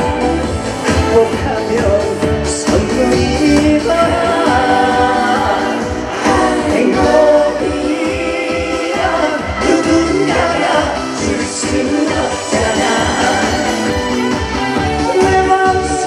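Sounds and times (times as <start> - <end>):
backing track with steady beat: 0.0 - 16.0
man singing into microphone: 0.9 - 13.8, 15.0 - 16.0.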